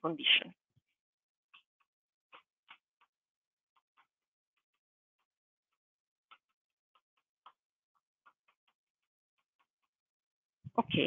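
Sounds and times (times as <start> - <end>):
chalk tapping on blackboard: 1.5 - 10.1.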